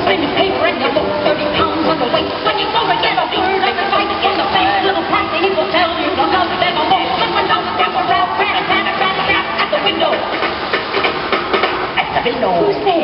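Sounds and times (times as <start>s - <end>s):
fountain water jets rushing: 0.0s - 13.0s
music playing: 0.0s - 13.0s.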